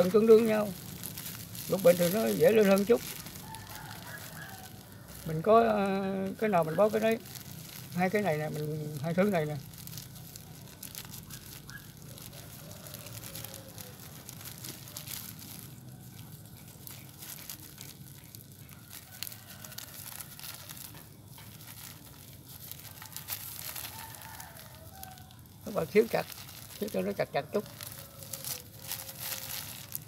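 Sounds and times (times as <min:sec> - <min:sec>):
plastic bag crinkling: 0:00.0 - 0:30.0.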